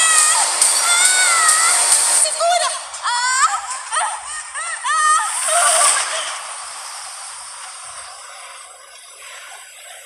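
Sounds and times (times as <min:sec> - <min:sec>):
rushing whoosh: 0:05.1 - 0:08.9.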